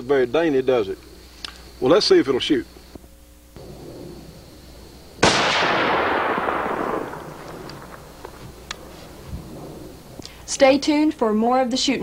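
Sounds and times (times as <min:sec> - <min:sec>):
rifle shot with echo: 0:05.2 - 0:08.9.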